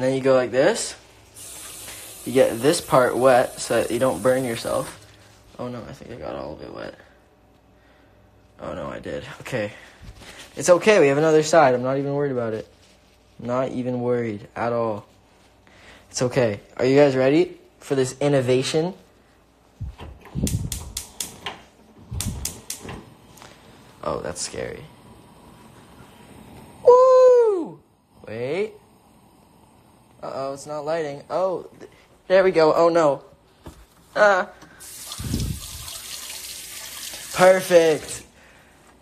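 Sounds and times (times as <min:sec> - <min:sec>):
stove igniter clicking: 0:20.2 - 0:21.6, 0:22.2 - 0:23.0
tap water pouring onto plate: 0:34.8 - 0:37.5.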